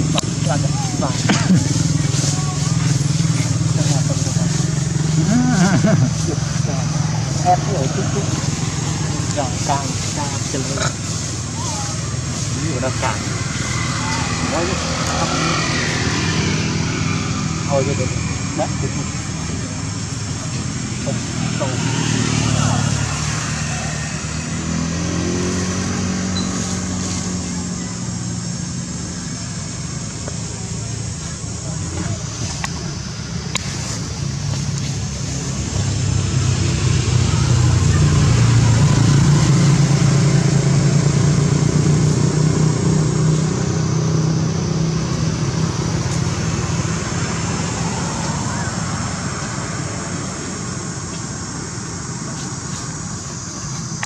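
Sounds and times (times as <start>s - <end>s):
small engine droning: 0.0s - 54.0s
voices: 0.0s - 54.0s.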